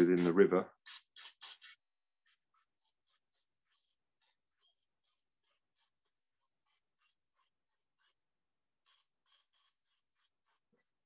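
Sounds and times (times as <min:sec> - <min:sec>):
faint quick scratchy strokes: 0:00.0 - 0:11.0.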